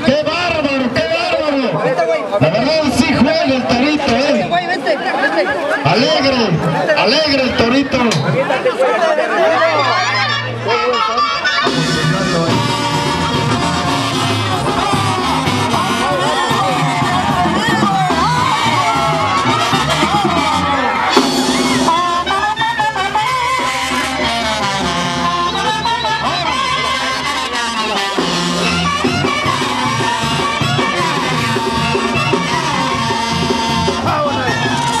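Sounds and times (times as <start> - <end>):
banda music with brass: 0.0 - 35.0.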